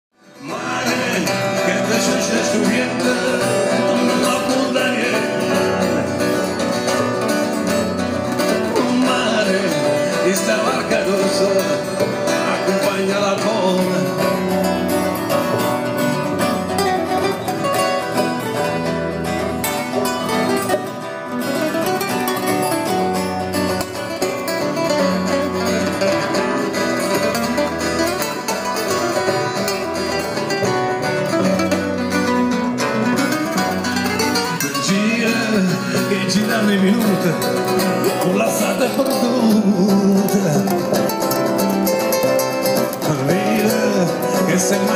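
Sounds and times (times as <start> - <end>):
plucked acoustic guitars: 0.2 - 44.9.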